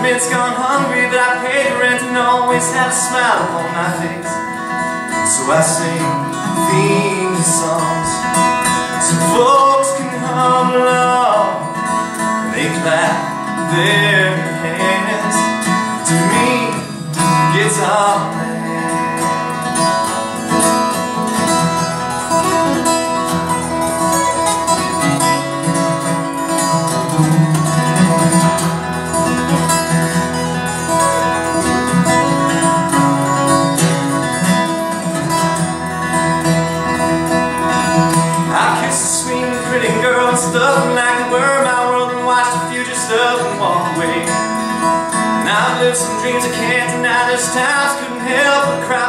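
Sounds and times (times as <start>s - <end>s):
acoustic guitar picking and strumming: 0.0s - 49.0s.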